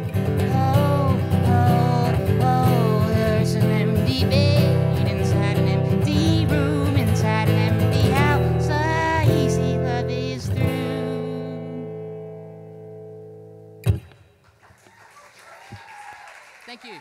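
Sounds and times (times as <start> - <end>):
acoustic guitar strummed: 0.0 - 14.4.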